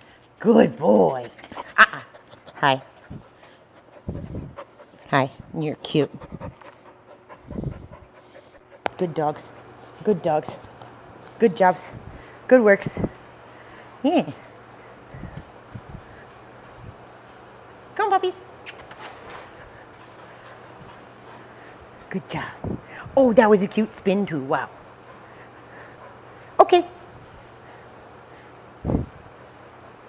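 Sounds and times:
low room hum: 0.0s - 30.0s
dog panting: 1.0s - 12.4s, 18.8s - 22.1s, 24.6s - 28.8s.

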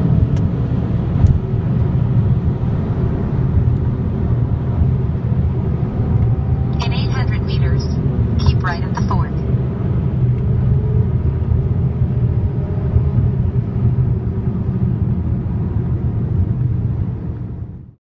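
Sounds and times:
car engine and tyres rumbling: 0.0s - 6.8s, 9.6s - 17.9s.

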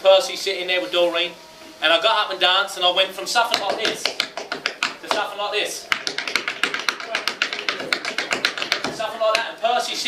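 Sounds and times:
shoes tapping on wooden board: 3.5s - 9.5s.

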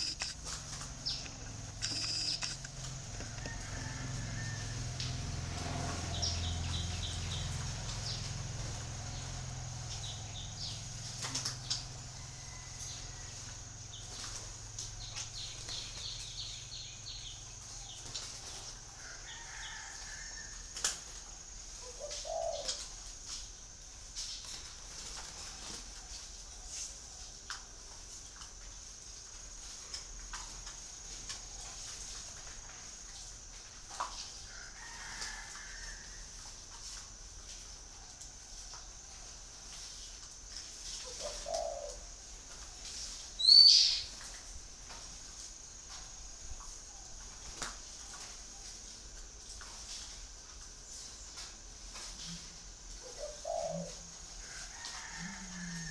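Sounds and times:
steady high hiss: 0.0s - 5.0s
dove cooing: 21.8s - 23.0s, 41.0s - 42.2s, 52.2s - 54.2s.

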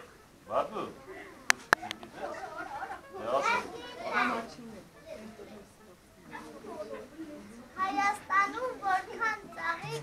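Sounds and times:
children chattering: 0.0s - 10.0s
high-pitched child's voice: 7.8s - 10.0s.

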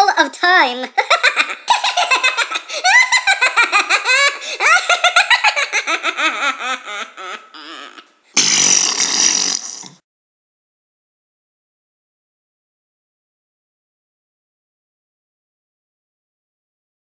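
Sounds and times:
high-pitched cartoon voice laughing: 0.8s - 8.1s.

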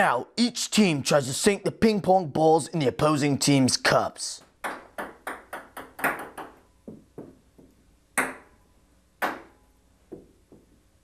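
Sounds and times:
ping pong balls bouncing on table: 4.6s - 8.6s, 9.2s - 10.8s.

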